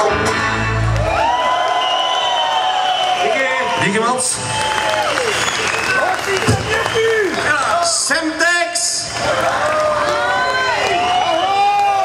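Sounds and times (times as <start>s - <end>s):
song playing: 0.0s - 1.1s
crowd voices and shouts: 0.0s - 12.0s
audience applauding: 0.8s - 12.0s.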